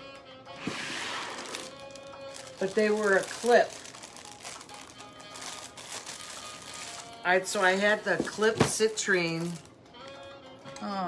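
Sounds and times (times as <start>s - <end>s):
quiet background music: 0.0s - 11.0s
plastic bag crinkling: 0.6s - 9.7s.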